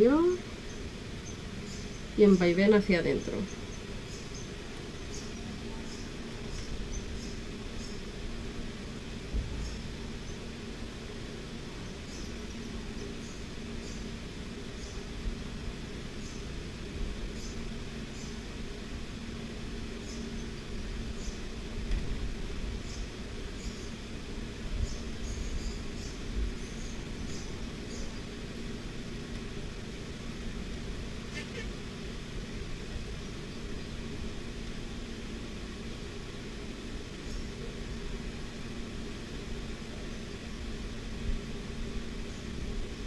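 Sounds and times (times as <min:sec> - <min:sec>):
low background hum: 0:00.0 - 0:43.0.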